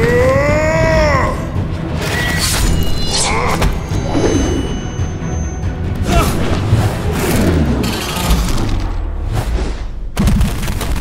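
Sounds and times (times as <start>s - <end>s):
dramatic film score: 0.0s - 11.0s.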